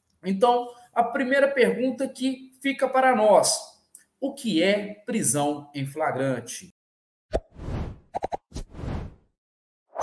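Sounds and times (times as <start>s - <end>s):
whoosh: 7.4s - 9.3s.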